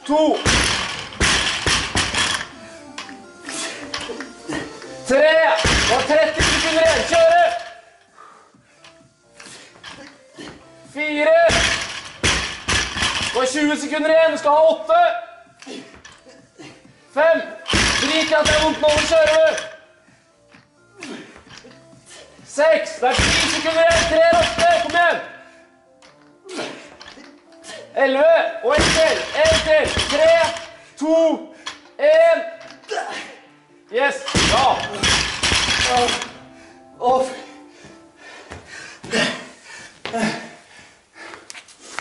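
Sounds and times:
background music: 0:00.0 - 0:42.0.

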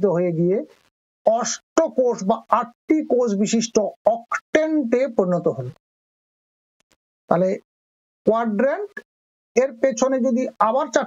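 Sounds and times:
man talking: 0:00.0 - 0:00.7, 0:01.3 - 0:05.8, 0:07.3 - 0:07.6, 0:08.3 - 0:09.0, 0:09.6 - 0:11.0.

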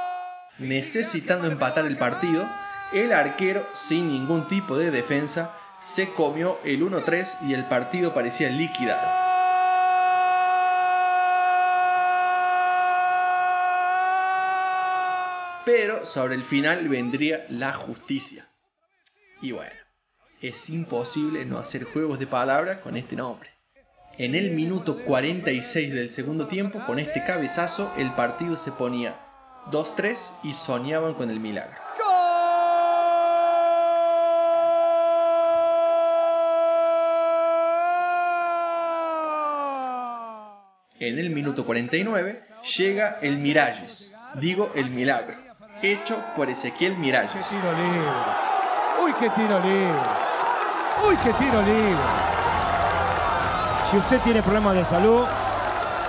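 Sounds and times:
commentator's long goal shout: 0:01.1 - 0:17.2, 0:26.8 - 0:40.6, 0:50.9 - 0:56.0.

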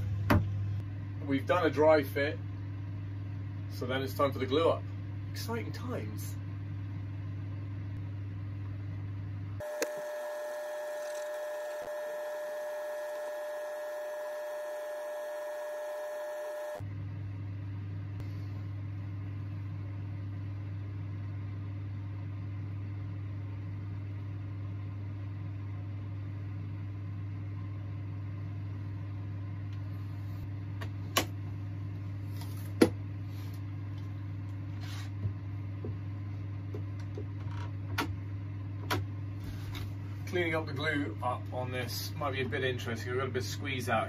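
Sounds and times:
steady low hum: 0:00.0 - 0:44.0
steady high-pitched tone: 0:09.6 - 0:16.8.

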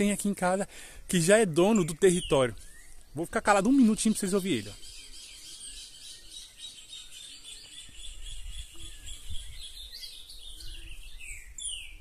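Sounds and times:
high bird chirps: 0:01.3 - 0:12.0.

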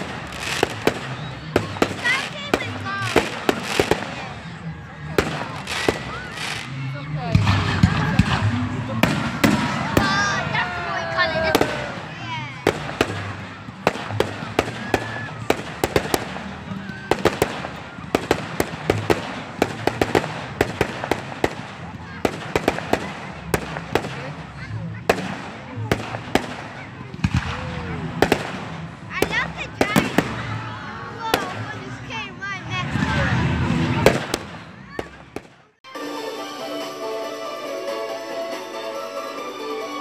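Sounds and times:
fireworks cracking and popping: 0:00.0 - 0:04.3, 0:05.0 - 0:30.6, 0:33.1 - 0:35.6
people's voices: 0:00.0 - 0:40.0.

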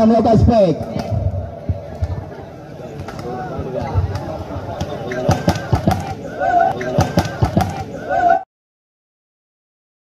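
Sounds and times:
voices of large crowd: 0:00.0 - 0:08.5
volleyballs struck by hand: 0:03.8 - 0:06.2.

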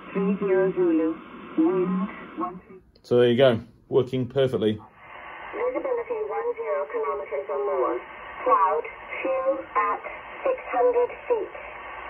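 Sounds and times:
radio hiss: 0:00.0 - 0:02.8, 0:04.6 - 0:12.0.

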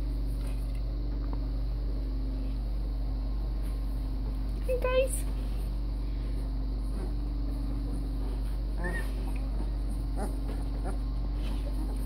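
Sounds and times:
steady low hum: 0:00.0 - 0:12.0
puppies whimpering and squeaking: 0:08.7 - 0:12.0.

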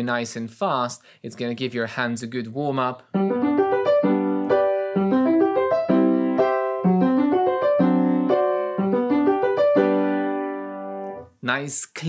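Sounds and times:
piano chord exercise: 0:03.2 - 0:11.2.

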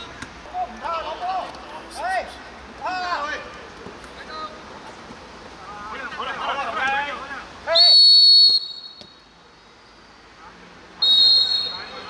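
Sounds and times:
referee's whistle blasts: 0:07.7 - 0:09.3, 0:11.0 - 0:12.0.

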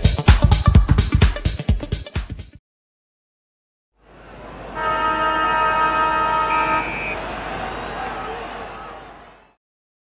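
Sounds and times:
crowd noise: 0:04.0 - 0:09.6
loud multi-tone horn blast: 0:04.2 - 0:07.8.

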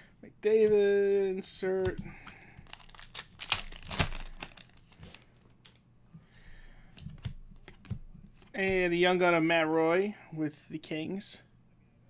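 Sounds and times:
trading cards rustling and clicking: 0:01.8 - 0:05.8.

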